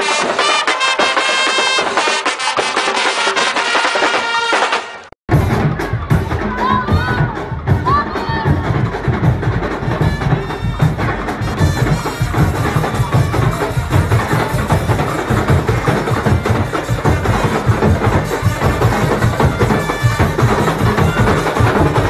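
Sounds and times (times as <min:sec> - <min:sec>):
drums beating a steady rhythm: 0:00.0 - 0:22.0
percussion-driven carnival music: 0:00.0 - 0:22.0.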